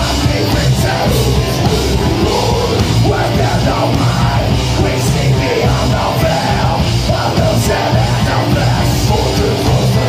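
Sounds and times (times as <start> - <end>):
heavy metal band playing: 0.0 - 10.0
yelled vocals: 0.0 - 10.0.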